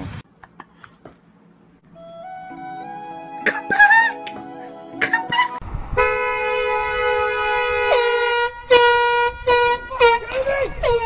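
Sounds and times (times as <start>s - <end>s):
low rumble: 5.6s - 7.8s
car horn honking: 5.9s - 10.5s.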